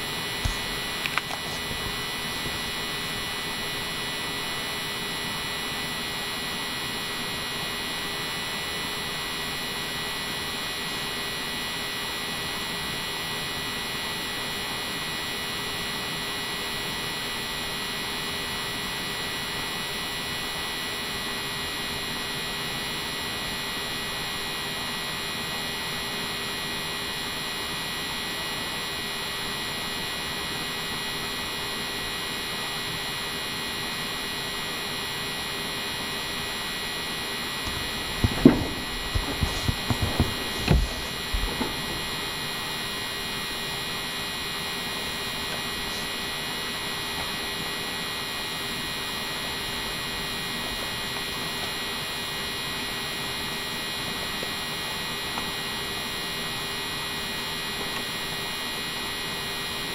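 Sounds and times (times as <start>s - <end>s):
electrical hum and hiss: 0.0s - 59.9s.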